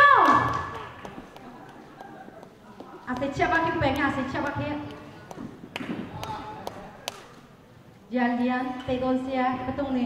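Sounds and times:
voices murmuring in a hall: 0:00.0 - 0:10.0.

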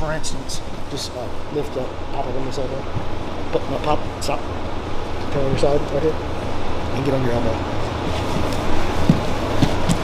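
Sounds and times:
steady background hum: 0:00.0 - 0:10.0
soft thumps on mats: 0:08.4 - 0:10.0.

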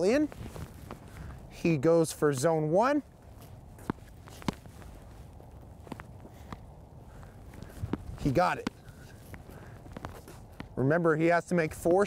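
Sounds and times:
light shuffling footsteps: 0:00.0 - 0:12.0
ball bouncing on hard court: 0:03.8 - 0:04.7, 0:07.6 - 0:10.8
paddle striking tennis ball: 0:03.8 - 0:04.7.

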